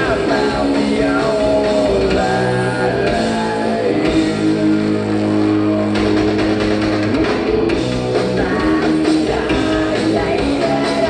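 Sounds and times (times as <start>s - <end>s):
rock band sustained chord: 0.0s - 11.0s.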